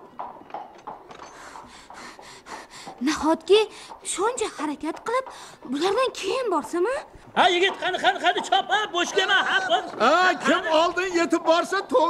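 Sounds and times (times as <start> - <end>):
horse hooves clip-clopping: 0.0 - 12.0.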